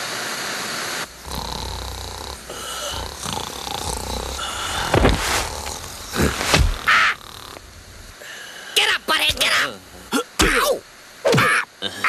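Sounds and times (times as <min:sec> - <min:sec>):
harsh squawk: 0:06.7 - 0:07.3.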